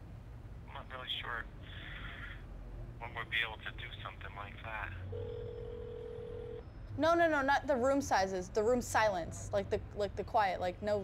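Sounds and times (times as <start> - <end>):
steady telephone tone: 5.1 - 6.6.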